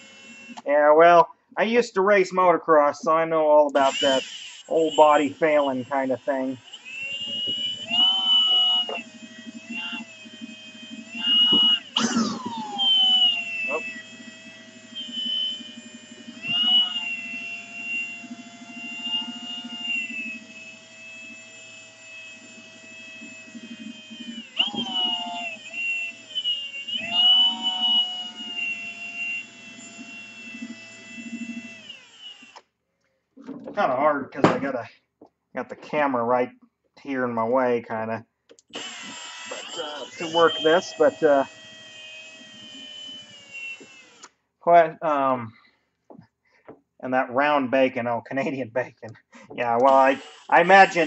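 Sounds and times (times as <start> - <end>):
cordless drill motor whine: 0.0 - 0.7, 3.8 - 32.7, 38.7 - 44.4, 49.8 - 51.0.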